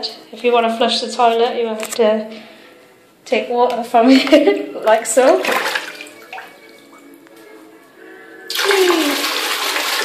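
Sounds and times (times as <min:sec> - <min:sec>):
water splashing into toilet bowl: 0:05.3 - 0:07.1, 0:08.5 - 0:10.0.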